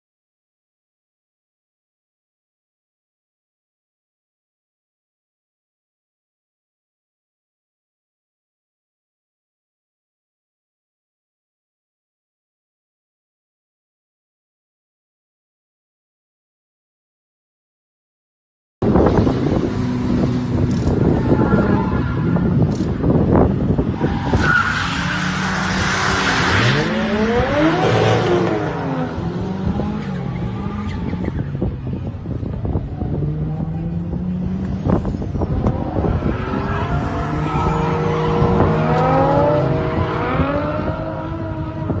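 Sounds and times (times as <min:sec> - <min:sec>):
car engines revving: 0:18.8 - 0:42.0
tyre screech: 0:20.9 - 0:22.7, 0:23.9 - 0:27.1, 0:36.1 - 0:39.3.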